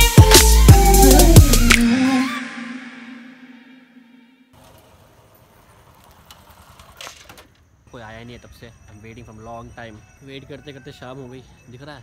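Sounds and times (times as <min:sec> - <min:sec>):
background music: 0:00.0 - 0:04.5
faint street background noise: 0:04.5 - 0:12.0.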